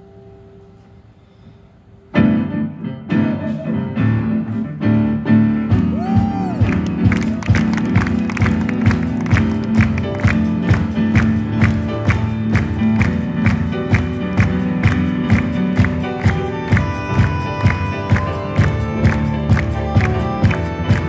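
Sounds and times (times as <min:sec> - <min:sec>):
piano: 0:00.0 - 0:21.0
double bass: 0:03.1 - 0:21.0
saxophone: 0:15.8 - 0:21.0.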